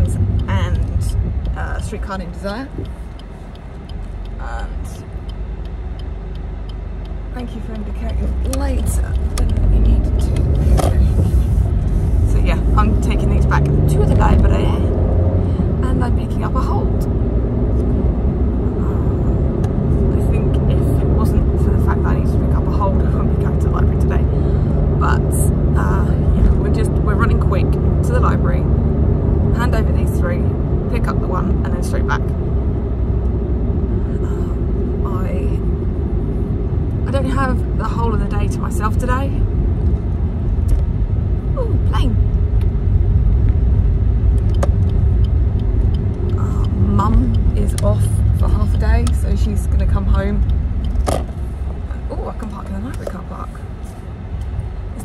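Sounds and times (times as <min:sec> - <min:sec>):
person speaking: 0:00.0 - 0:02.9, 0:07.4 - 0:14.9, 0:46.3 - 0:50.4
car engine and road rumble: 0:00.0 - 0:55.0.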